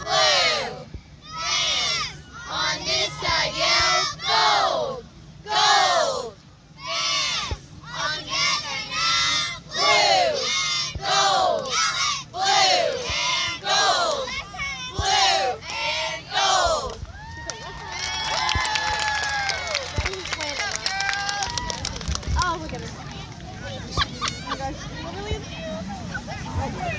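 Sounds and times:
girls chanting a cheer: 0.0s - 17.0s.

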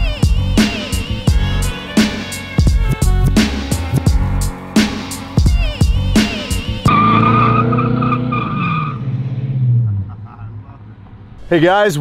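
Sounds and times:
music with sharp beats: 0.0s - 6.9s.

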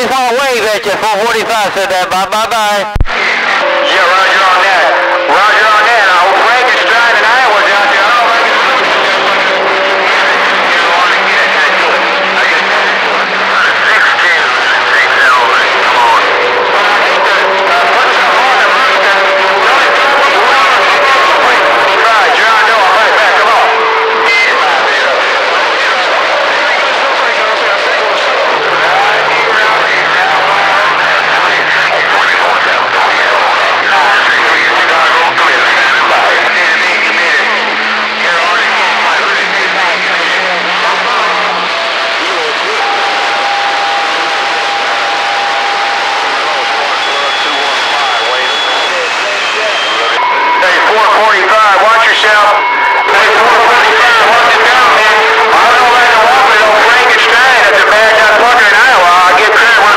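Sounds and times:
garbled overlapping radio voices: 0.0s - 59.9s
loud radio static: 0.0s - 59.9s
steady radio whistles: 3.1s - 59.9s.

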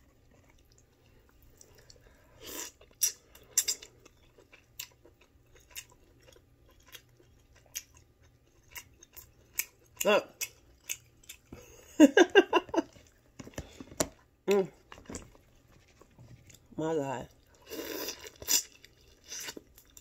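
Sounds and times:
person chewing: 0.0s - 11.8s, 12.7s - 16.7s, 17.3s - 20.0s.

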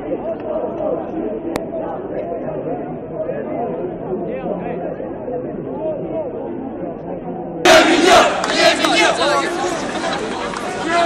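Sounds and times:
muffled crowd chatter: 0.0s - 11.0s
crowd chanting and shouting: 7.6s - 11.0s.

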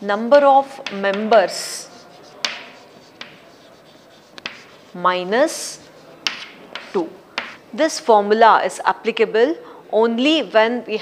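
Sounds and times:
chalk scratching on chalkboard: 0.8s - 7.6s
chalk tapping board: 0.8s - 7.6s.

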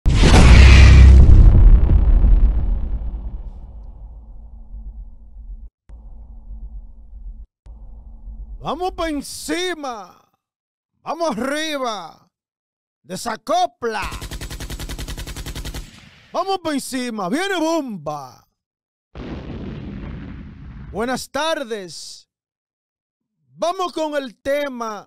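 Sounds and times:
explosion crackling: 0.1s - 5.7s, 19.2s - 21.0s
deep explosion rumble: 0.1s - 8.6s, 19.2s - 21.0s
machine-gun burst: 14.0s - 16.3s.

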